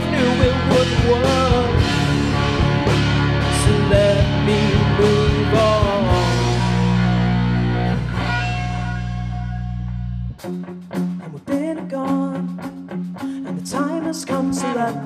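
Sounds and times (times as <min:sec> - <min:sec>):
rock band playing: 0:00.0 - 0:15.0
staccato electric guitar: 0:00.0 - 0:15.0.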